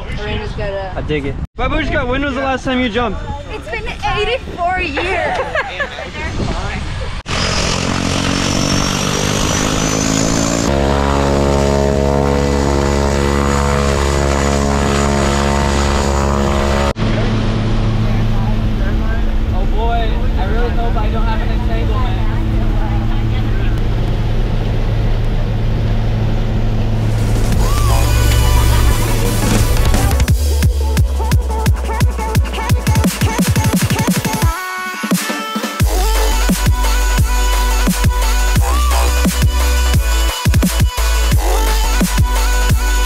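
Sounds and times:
propeller aircraft engine running: 7.2s - 34.5s.

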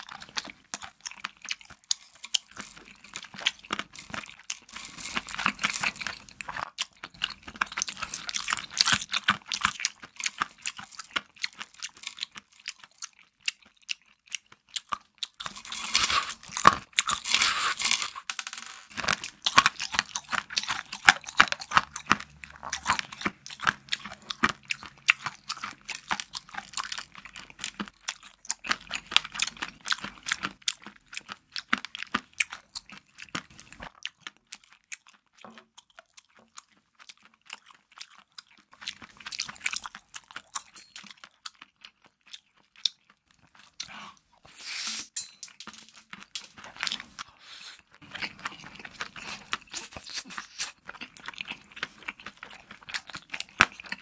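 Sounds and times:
close chewing crunchy food: 0.0s - 54.0s.

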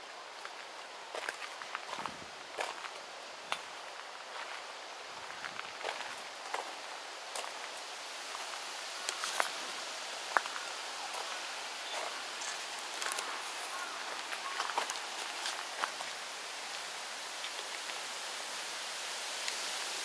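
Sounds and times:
steady outdoor hiss: 0.0s - 20.0s
footsteps on garden path: 0.3s - 18.0s.

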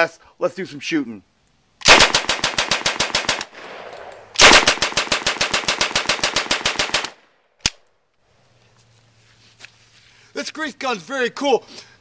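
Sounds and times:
submachine gun automatic fire: 1.8s - 7.2s.

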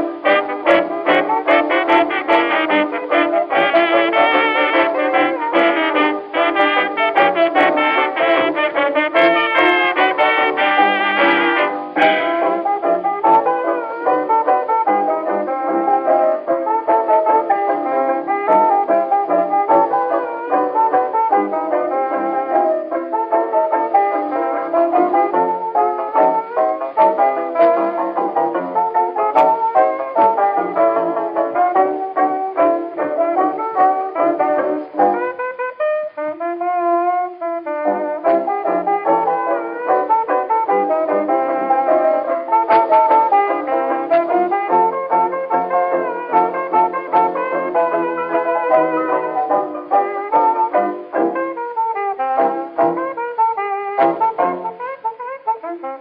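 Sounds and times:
brass-led dance band: 0.0s - 56.0s.

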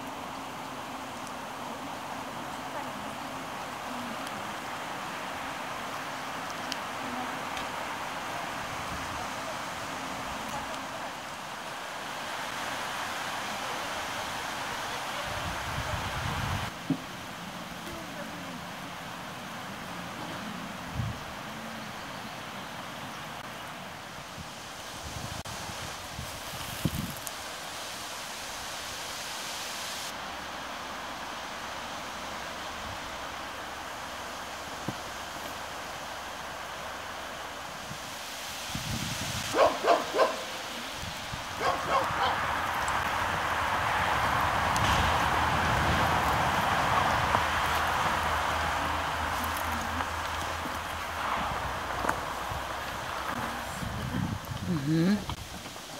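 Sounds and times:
wind: 0.0s - 55.9s.

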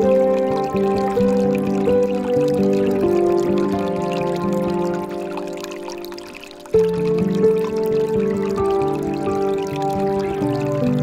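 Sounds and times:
soft relaxation music chords: 0.0s - 11.0s
water trickling from fountain spout: 0.0s - 11.0s.

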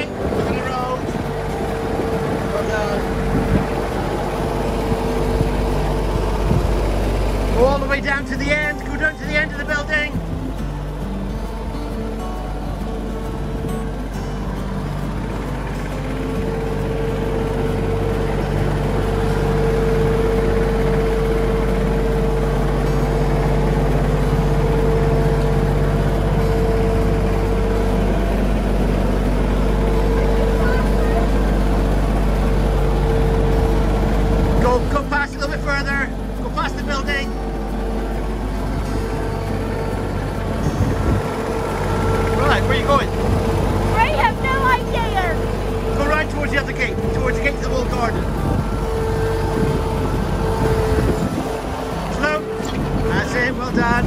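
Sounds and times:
steady whine: 0.0s - 54.0s
tractor engine running: 0.0s - 54.0s.

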